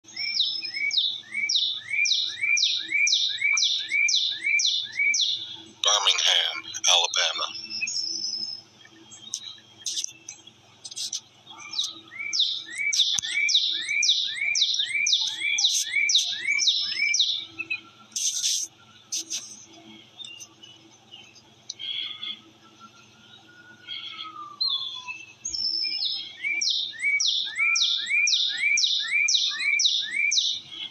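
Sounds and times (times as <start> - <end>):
songbird singing: 0.0 - 30.9.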